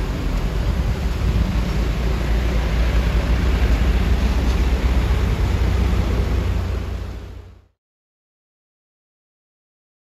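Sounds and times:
truck diesel engine rumbling: 0.0s - 7.7s.

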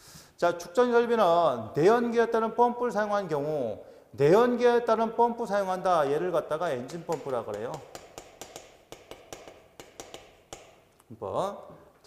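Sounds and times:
chalk tapping on chalkboard: 6.8s - 10.9s.

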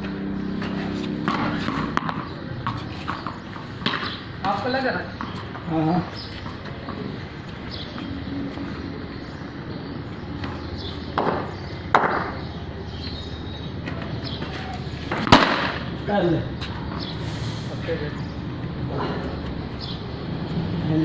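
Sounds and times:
outdoor background noise: 0.0s - 21.0s.

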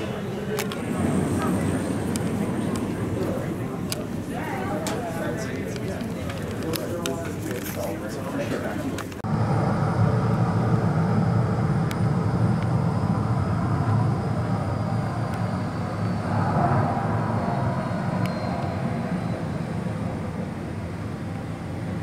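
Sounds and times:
faint high jet whine falling: 0.0s - 6.6s, 9.3s - 22.0s
jet aircraft low rumble: 0.0s - 22.0s.

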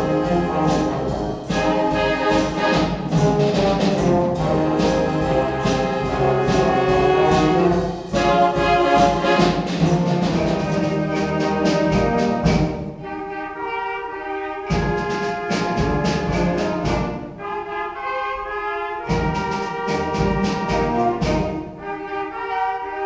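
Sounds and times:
steady drum beat: 0.0s - 13.0s, 14.7s - 17.4s, 19.0s - 21.8s
held wind notes: 0.0s - 23.0s
wind band playing: 0.0s - 23.0s.

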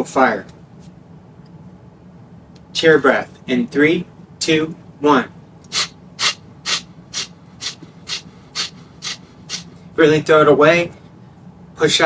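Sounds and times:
sharp exhales through the nose: 5.7s - 9.9s.

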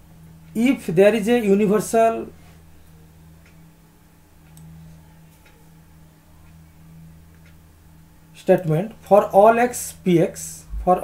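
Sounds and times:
low electrical hum: 0.0s - 11.0s
faint ticks: 4.4s - 4.8s.

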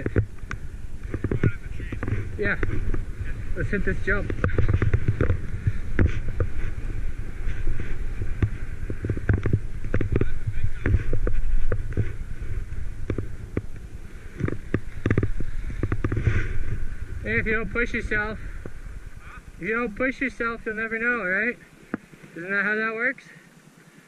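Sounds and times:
wind buffeting microphone: 0.0s - 22.2s
skis scraping over snow: 0.0s - 22.6s.

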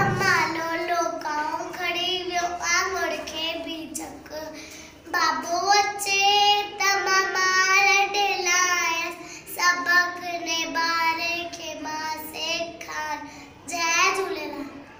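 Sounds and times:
girl singing: 0.0s - 14.8s.

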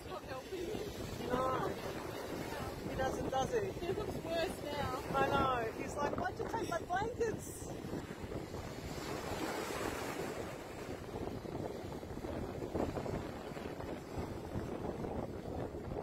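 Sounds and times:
surf washing onto beach: 0.0s - 16.0s
wind buffeting microphone: 0.0s - 16.0s.

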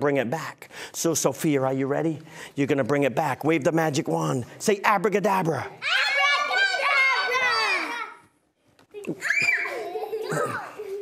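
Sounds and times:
children calling out: 5.8s - 8.4s, 9.0s - 11.0s.

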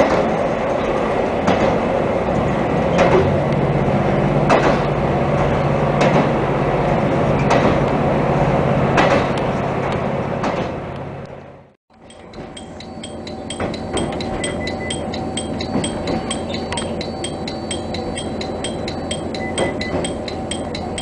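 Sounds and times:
train rumble: 0.0s - 21.0s
low engine drone: 2.3s - 21.0s
wheels clicking over rail joints: 11.9s - 21.0s.

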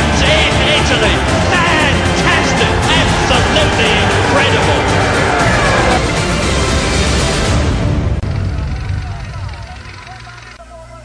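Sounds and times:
racing car engine: 0.0s - 7.8s.

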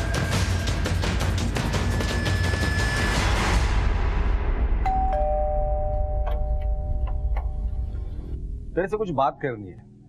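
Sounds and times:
two-tone doorbell chime: 4.8s - 7.9s.

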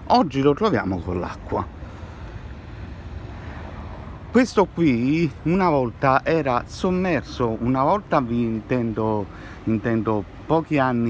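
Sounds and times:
low rumble of city background: 0.0s - 11.0s.

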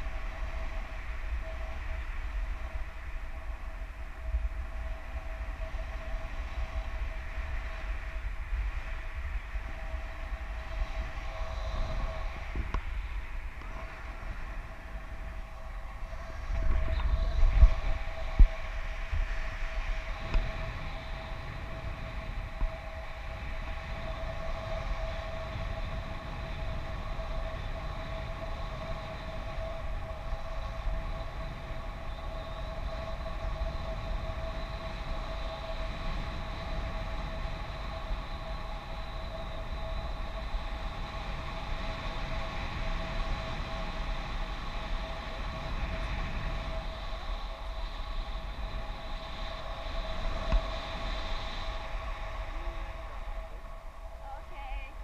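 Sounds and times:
steady high-pitched tone: 0.0s - 55.0s
wind rushing over microphone: 0.0s - 55.0s.

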